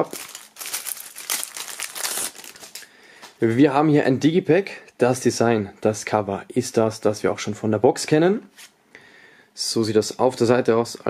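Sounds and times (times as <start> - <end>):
plastic shrink-wrap crinkling: 0.0 - 3.3.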